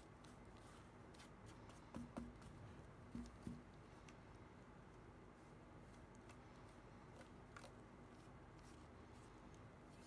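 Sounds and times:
brush strokes on plastic: 0.0s - 10.0s.

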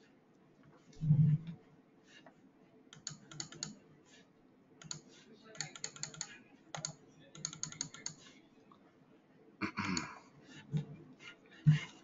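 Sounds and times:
typing on computer keyboard: 2.9s - 3.8s, 4.8s - 8.2s.

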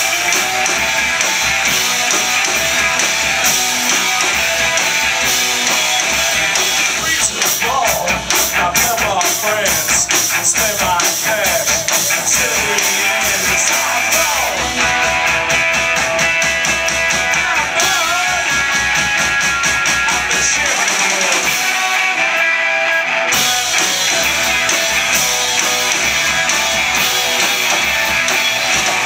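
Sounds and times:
electric guitar strumming: 0.0s - 29.0s
live rock band: 0.0s - 29.0s.

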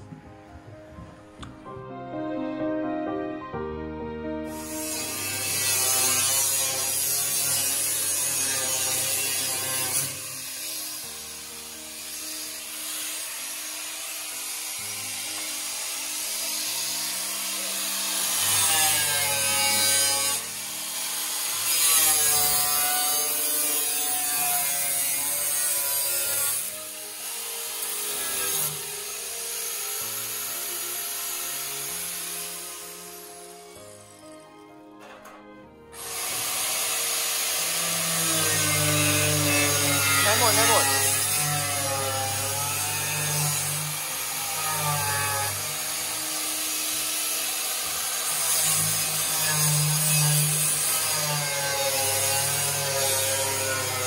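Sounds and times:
background music: 0.0s - 54.0s
angle grinder cutting steel: 4.5s - 54.0s.

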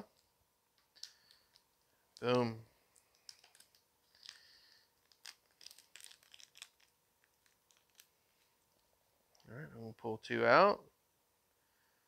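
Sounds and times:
plastic packet crinkling: 0.9s - 2.4s, 3.0s - 8.5s.

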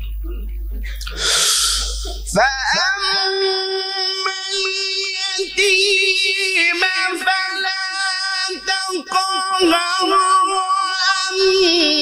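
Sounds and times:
man chanting recitation: 1.6s - 12.0s.

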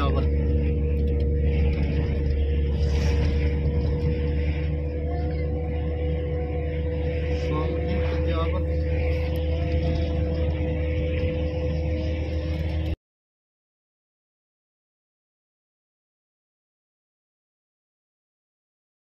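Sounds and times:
car engine and tyres rumbling: 0.0s - 13.0s
steady hum: 0.0s - 13.0s.

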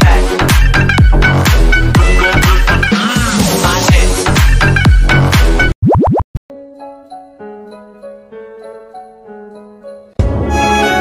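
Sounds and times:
rising bloops transition effect: 5.8s - 6.4s
soft melodic background music: 6.5s - 11.0s.

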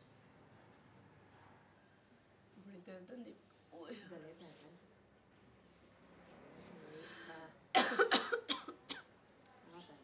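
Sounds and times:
woman coughing: 7.8s - 9.1s.

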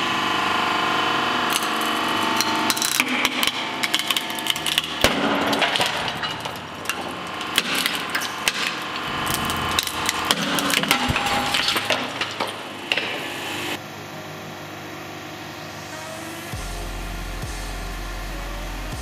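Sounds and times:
hydraulic press humming: 0.0s - 14.5s.

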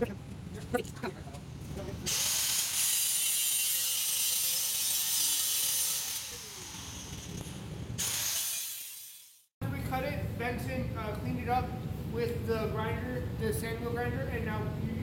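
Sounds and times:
power grinder grinding metal: 2.1s - 9.4s.

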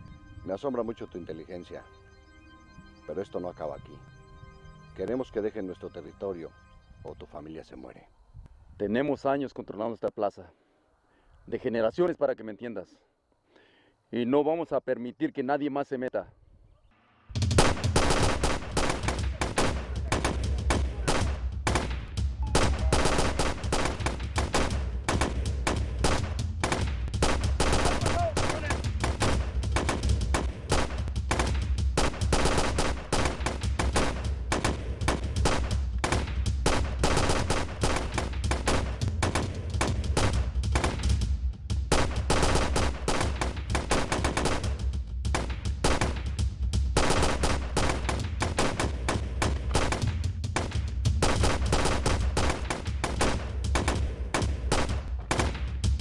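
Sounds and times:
rapid handgun fire: 17.4s - 41.2s, 41.9s - 56.0s.

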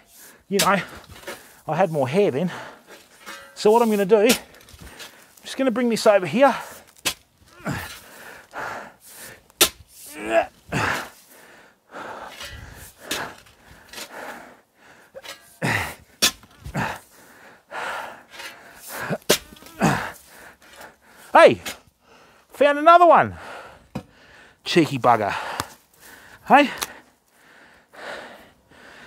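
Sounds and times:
hoe striking soil: 0.6s - 2.2s, 3.0s - 8.1s, 9.5s - 10.4s, 12.3s - 14.1s, 15.2s - 16.9s, 18.3s - 20.2s
hoe scraping through dirt: 3.0s - 8.1s, 9.1s - 11.2s
person grunting and breathing: 7.5s - 9.3s, 10.1s - 13.4s, 14.0s - 16.1s, 16.7s - 20.9s, 25.3s - 25.7s.

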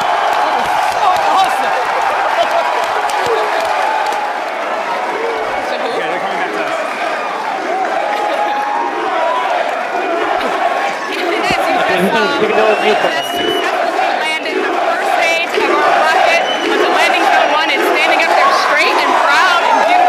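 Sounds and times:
crowd cheering and clapping: 0.0s - 20.0s.

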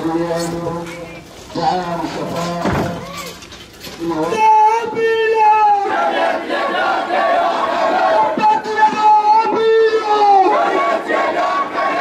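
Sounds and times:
crowd chanting slogans: 4.9s - 12.0s.

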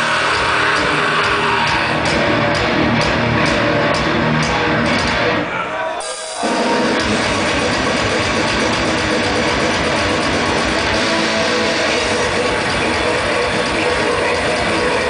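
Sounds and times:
bass guitar: 0.0s - 5.5s, 6.4s - 15.0s
distorted electric guitars: 0.0s - 15.0s
dense drumming: 6.4s - 15.0s.

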